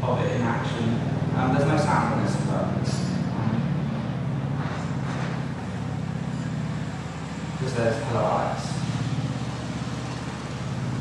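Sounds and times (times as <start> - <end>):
low fluttering hum: 0.0 - 11.0.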